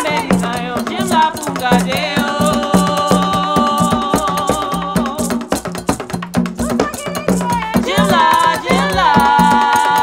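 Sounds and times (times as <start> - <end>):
voices singing: 0.0 - 5.6, 6.6 - 10.0
drum ensemble playing: 0.0 - 10.0.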